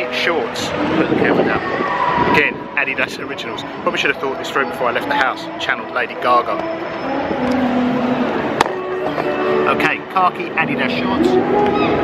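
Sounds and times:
city street noise: 0:00.0 - 0:12.0.

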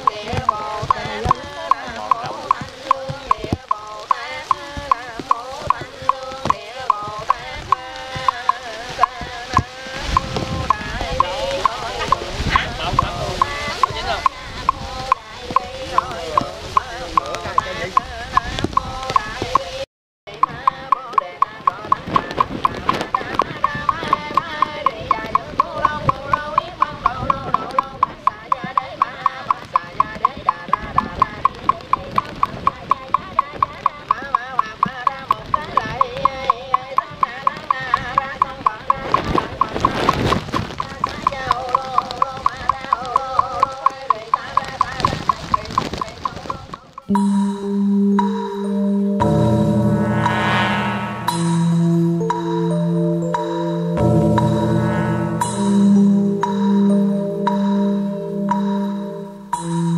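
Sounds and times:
group chanting: 0:09.9 - 0:18.0
wooden fish knocking: 0:20.4 - 0:47.1
chanting on sustained notes: 0:47.1 - 0:59.9.

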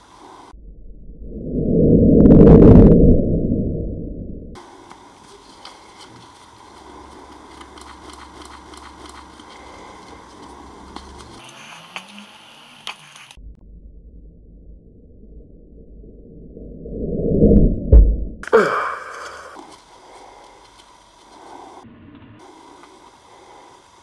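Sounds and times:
paper crumpling and tearing: 0:04.6 - 0:13.4.

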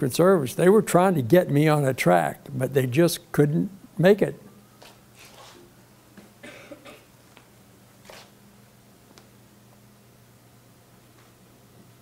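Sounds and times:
low room hum: 0:00.0 - 0:12.0
person coughing faintly: 0:06.4 - 0:07.1.

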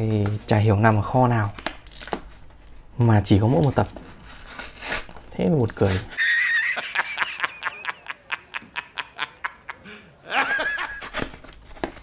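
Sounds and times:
man laughing hard: 0:06.2 - 0:11.1.

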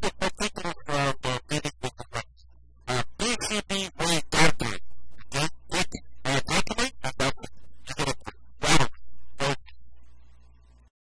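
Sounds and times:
low steady hum: 0:00.7 - 0:10.9
person speaking rapidly: 0:03.0 - 0:08.3.

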